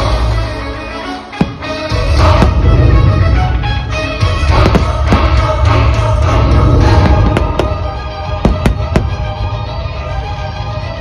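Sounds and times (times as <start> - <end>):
music playing loudly: 0.0 - 11.0
firework bangs: 1.3 - 6.0, 6.6 - 9.5.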